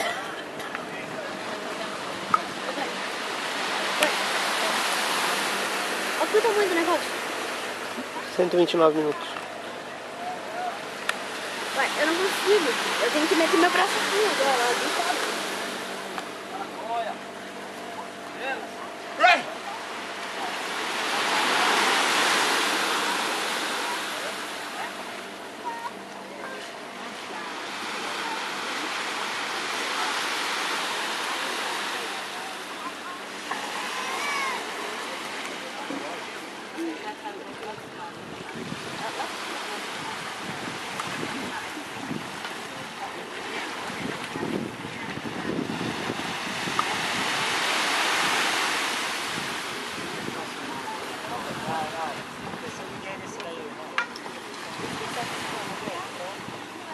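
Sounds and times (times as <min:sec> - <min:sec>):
wave washing onto beach: 0:00.0 - 0:56.9.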